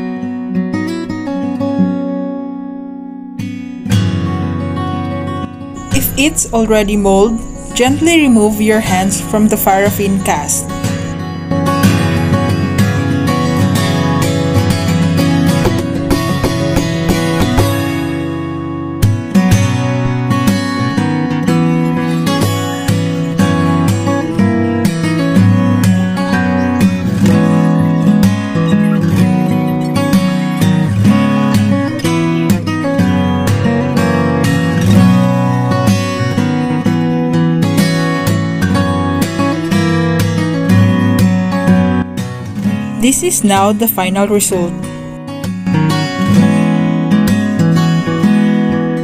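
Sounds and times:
fingerstyle acoustic guitar: 0.0s - 6.1s, 10.3s - 49.0s.

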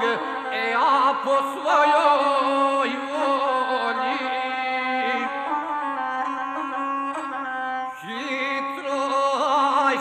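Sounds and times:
bowed folk fiddle melody: 0.0s - 10.0s.

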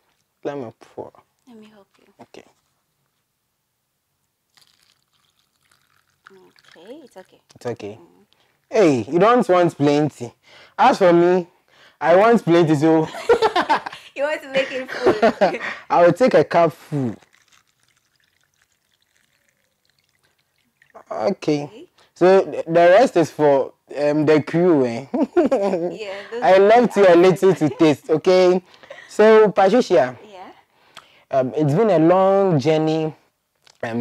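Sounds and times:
drink trickling into glass: 4.5s - 7.7s, 17.0s - 21.6s.

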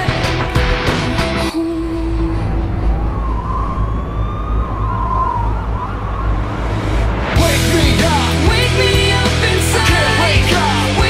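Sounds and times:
low rumble: 0.7s - 10.4s
siren wailing: 1.6s - 7.3s.

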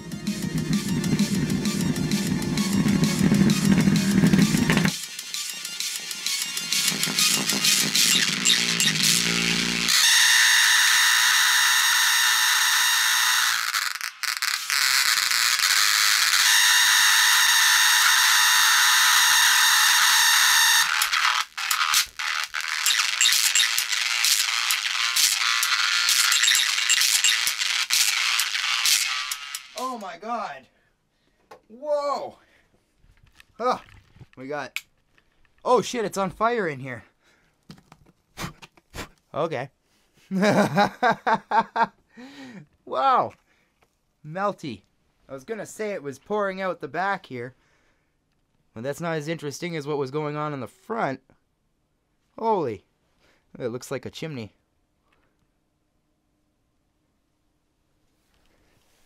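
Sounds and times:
distorted music from speakers: 0.0s - 9.9s, 20.8s - 29.8s
buzzy treble tones: 0.0s - 29.9s.

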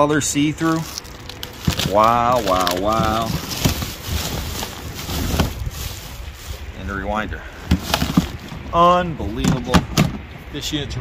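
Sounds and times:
steady low rumble: 0.0s - 11.0s
plastic bags rustling: 0.6s - 8.7s.

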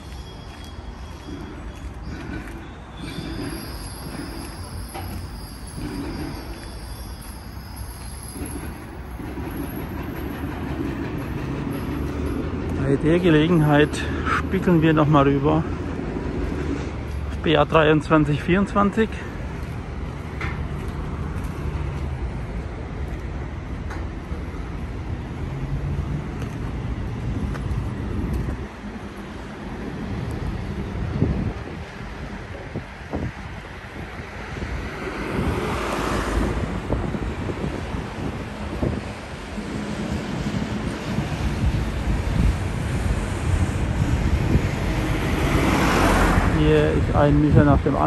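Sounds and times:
road traffic rumble: 0.0s - 48.0s
wind buffeting microphone: 27.0s - 28.8s, 29.8s - 48.0s.

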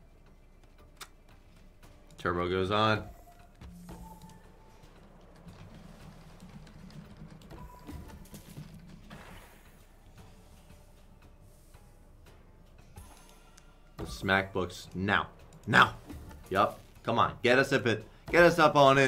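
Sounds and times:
slot game music: 0.0s - 19.0s.

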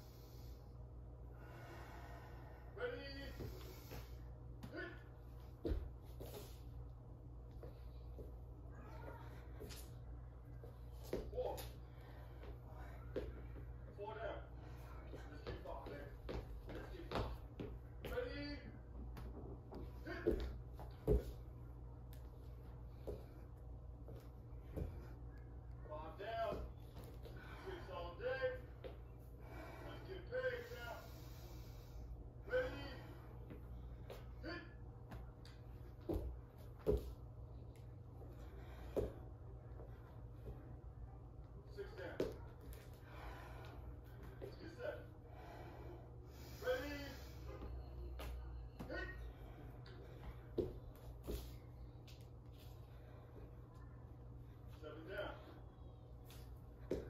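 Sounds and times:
hard breathing: 0.0s - 4.5s, 27.0s - 34.4s, 42.7s - 48.0s
steady low hum: 0.0s - 57.0s
feet thudding on floor: 5.5s - 6.6s, 19.1s - 21.5s, 35.9s - 37.2s.

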